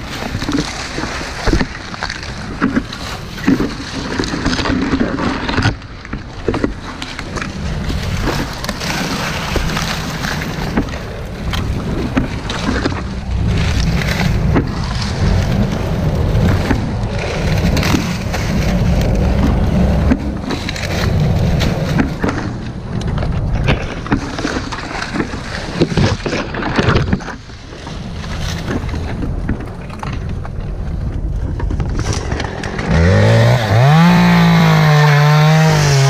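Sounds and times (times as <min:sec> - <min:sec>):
dry palm fronds rustling: 0:00.0 - 0:36.0
steady low rumble: 0:05.9 - 0:34.8.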